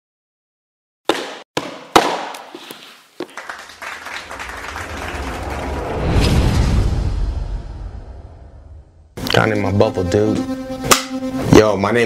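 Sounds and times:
low rumbling swell: 4.2s - 9.2s.

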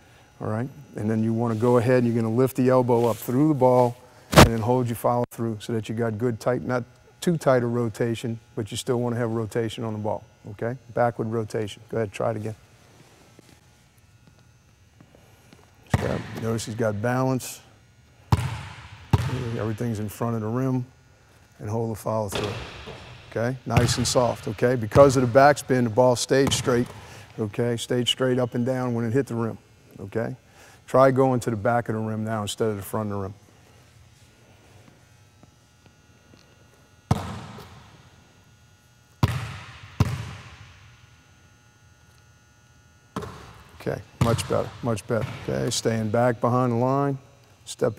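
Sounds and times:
basketball bouncing on hardwood floor: 15.9s - 16.4s, 18.3s - 19.5s, 37.1s - 37.8s, 39.2s - 40.5s, 43.2s - 43.6s.

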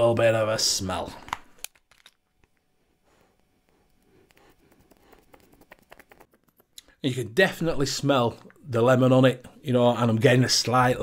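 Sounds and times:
faint sniffing: 3.0s - 7.0s.

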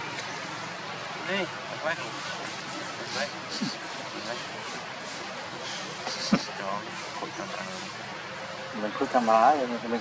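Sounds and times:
indistinct voices talking: 0.0s - 10.0s
steady outdoor noise: 0.0s - 10.0s.

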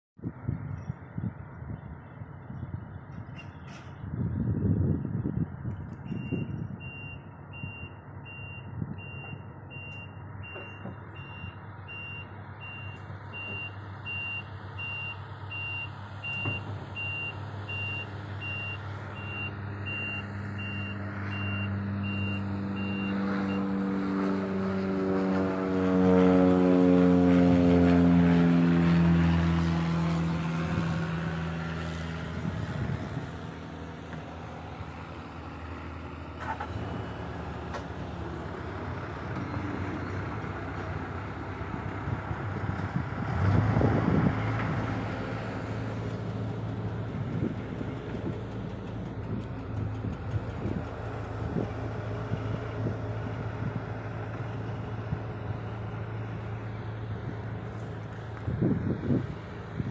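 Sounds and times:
diesel machinery running: 1.9s - 59.9s
reversing alarm beeping: 6.1s - 23.7s.

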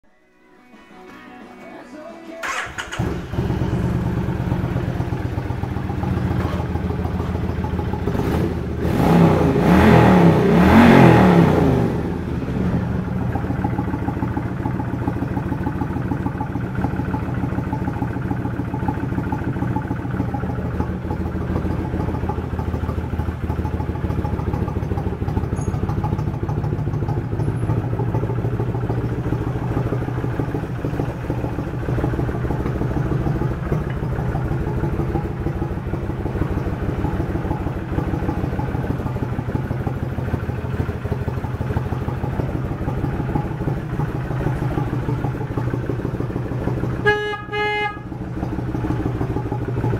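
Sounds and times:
motorcycle engine revving and idling: 2.4s - 49.9s.

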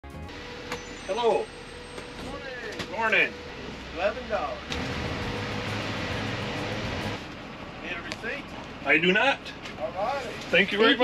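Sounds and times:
vehicle engine hum: 0.3s - 11.0s.

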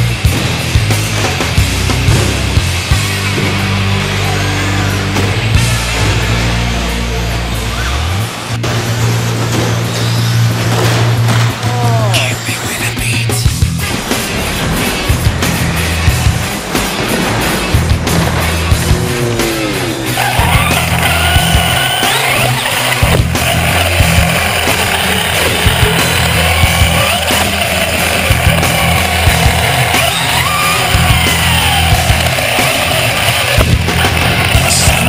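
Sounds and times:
music with heavy beat: 0.0s - 8.6s, 10.8s - 35.0s
toy truck electric motor whining: 20.2s - 35.0s.

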